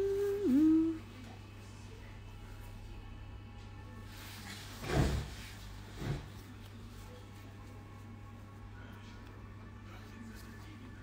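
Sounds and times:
woman humming: 0.0 - 1.2.

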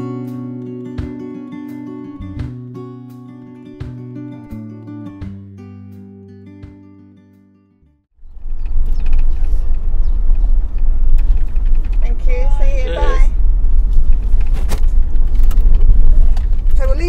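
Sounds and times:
road and engine rumble: 8.1 - 17.0.

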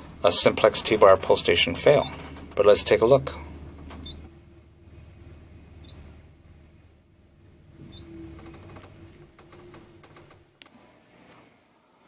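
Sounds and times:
elevator hum: 0.0 - 10.6
faint tone: 7.4 - 10.4.

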